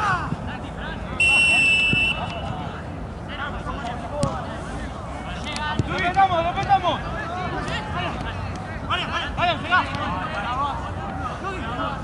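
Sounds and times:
voices shouting short calls: 0:01.2 - 0:02.6.

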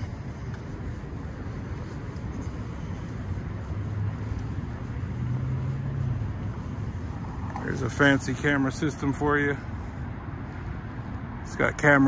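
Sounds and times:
low motor hum: 0:00.0 - 0:08.2.

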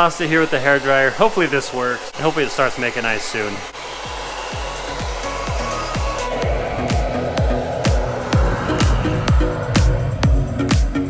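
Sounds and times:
hair dryer blowing: 0:00.0 - 0:11.0
electronic dance music: 0:02.8 - 0:11.0.

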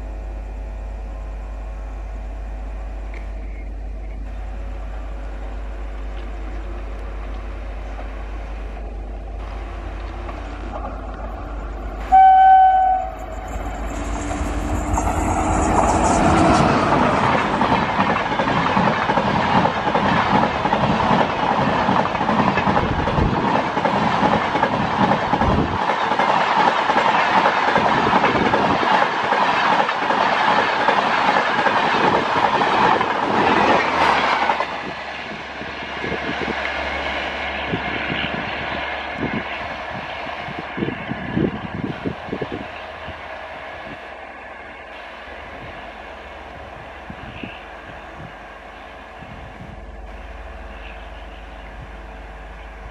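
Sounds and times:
rail clicks: 0:03.1 - 0:52.0
train passing at speed: 0:04.2 - 0:52.9
locomotive horn: 0:12.0 - 0:13.7
coach wheels clattering on rails: 0:13.1 - 0:36.8.

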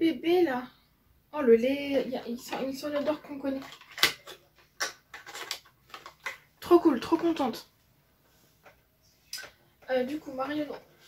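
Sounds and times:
packaging clicks and rustles: 0:03.0 - 0:06.5.

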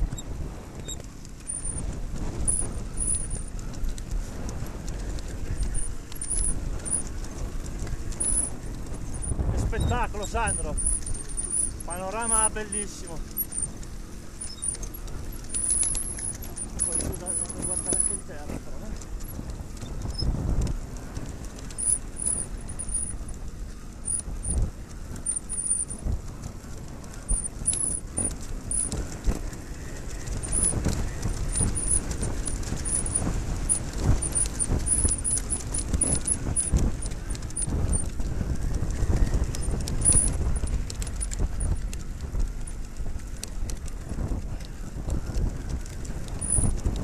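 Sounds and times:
motorcycle engine at low revs: 0:00.0 - 0:47.0
motorcycle knocking and rattling: 0:00.0 - 0:47.0.

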